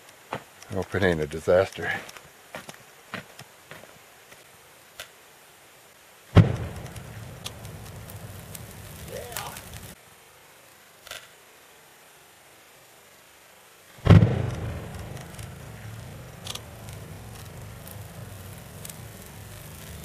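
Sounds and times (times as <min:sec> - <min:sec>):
fire whooshing up: 0:06.3 - 0:10.0, 0:13.9 - 0:20.0
flames rumbling: 0:06.3 - 0:10.1, 0:13.8 - 0:20.0.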